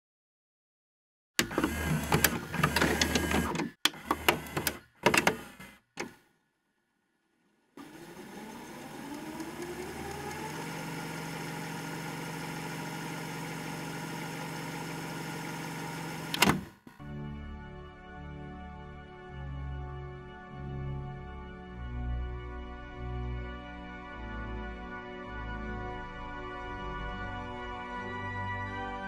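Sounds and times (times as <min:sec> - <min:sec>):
cassette mechanism clunks and clicks: 0:01.4 - 0:06.2, 0:16.2 - 0:17.0
drive motor whine and hum: 0:01.4 - 0:06.2, 0:07.8 - 0:17.0.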